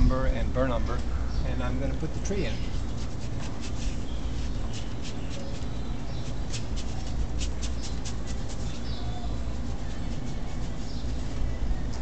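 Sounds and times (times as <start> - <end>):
brush scratching on canvas: 2.2 - 11.5.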